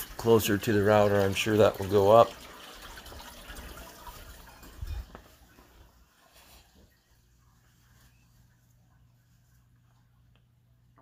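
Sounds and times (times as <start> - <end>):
rustling handling noise: 4.7 - 10.6.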